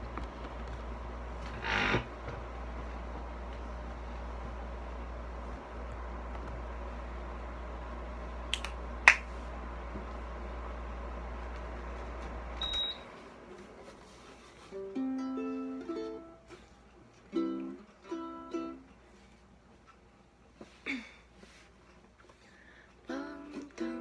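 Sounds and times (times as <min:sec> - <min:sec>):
steady low hum: 0:00.0 - 0:24.0
ukulele strumming jazz chords: 0:14.6 - 0:19.3.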